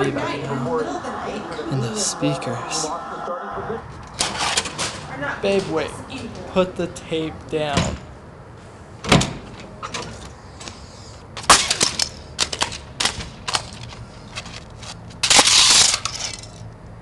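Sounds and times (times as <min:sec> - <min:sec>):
plastic cassette cracking on concrete: 0:11.5 - 0:16.6.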